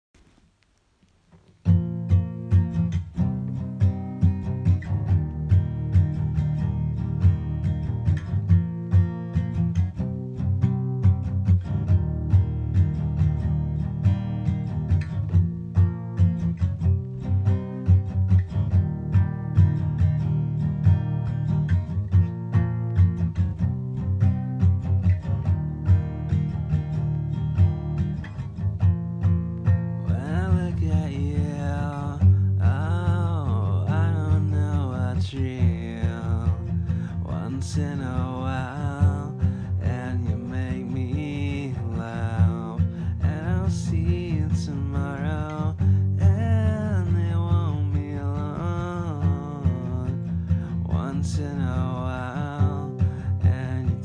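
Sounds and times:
acoustic guitar strumming chords: 1.6 - 54.0.

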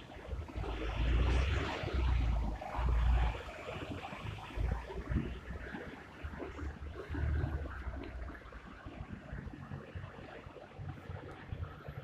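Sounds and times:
traffic noise: 0.0 - 5.7.

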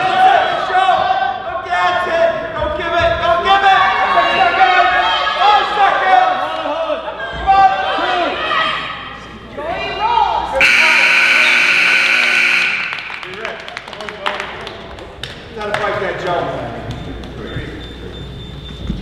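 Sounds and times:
scoreboard buzzer: 10.6 - 13.3.

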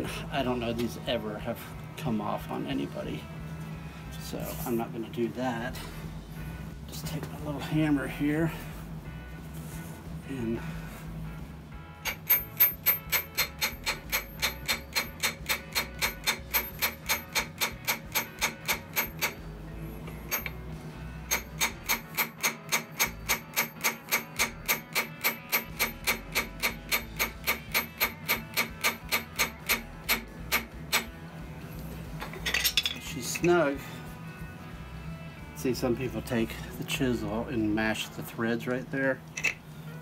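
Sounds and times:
hammer tapping on metal nut: 12.0 - 19.4, 20.1 - 20.6, 21.3 - 31.1.

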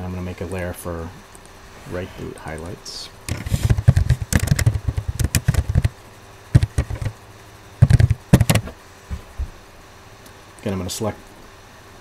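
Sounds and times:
typing on computer keyboard: 3.3 - 5.9, 6.6 - 7.1, 7.8 - 8.7.

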